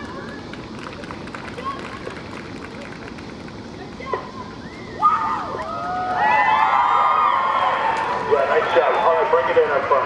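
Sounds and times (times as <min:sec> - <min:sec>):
crowd cheering and whooping: 0:04.6 - 0:09.8.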